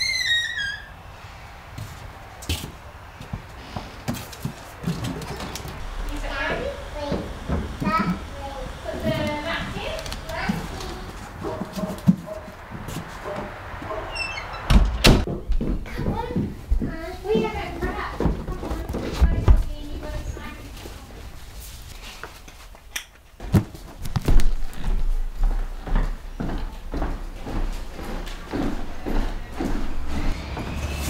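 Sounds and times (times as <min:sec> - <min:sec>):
door hinge creaking: 0:00.0 - 0:01.0, 0:14.1 - 0:15.3.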